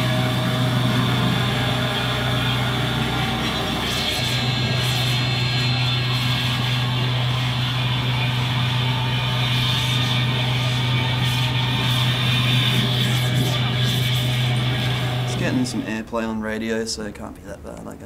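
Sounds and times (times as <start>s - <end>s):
electronic noise music: 0.0s - 16.0s
steady low drone: 0.0s - 16.0s.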